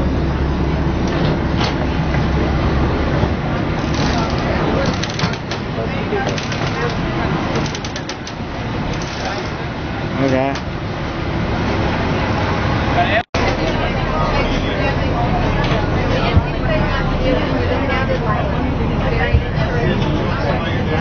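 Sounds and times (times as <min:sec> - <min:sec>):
boat engine running: 0:00.0 - 0:21.0
passengers chattering: 0:00.0 - 0:21.0.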